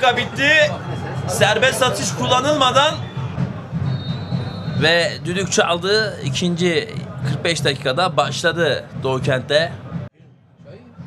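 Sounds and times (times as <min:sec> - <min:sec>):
faint referee's whistle: 0:02.1 - 0:04.9.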